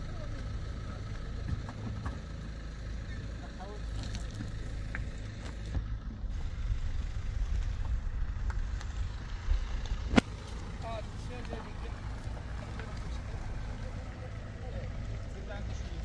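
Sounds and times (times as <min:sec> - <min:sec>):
faint distant voices: 0:10.7 - 0:16.0.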